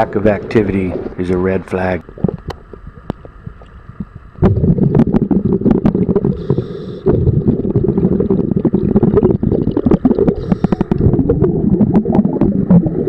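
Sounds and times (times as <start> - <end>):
underwater breath bubbling: 2.0 - 13.0.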